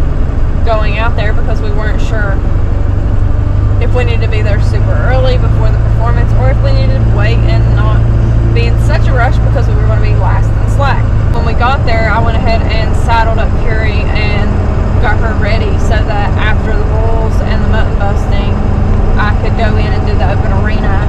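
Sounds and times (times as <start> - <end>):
vehicle engine and road drone: 0.0 - 21.0
voices talking: 0.6 - 2.4, 3.8 - 21.0.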